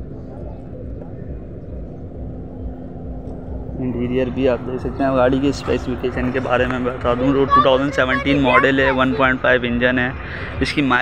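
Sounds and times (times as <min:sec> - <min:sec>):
faint constant hum: 0:00.0 - 0:11.0
indistinct voices: 0:00.0 - 0:11.0
steady low rumble: 0:00.0 - 0:11.0.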